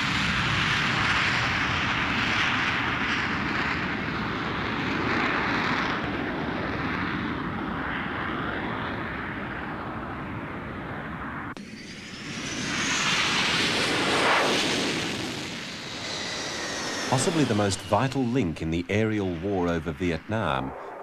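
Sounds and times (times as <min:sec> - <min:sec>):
jet engine roar: 0:00.0 - 0:21.0.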